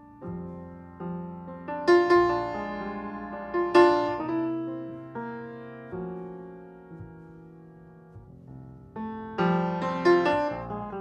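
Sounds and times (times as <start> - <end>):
solo piano music: 0.0 - 11.0.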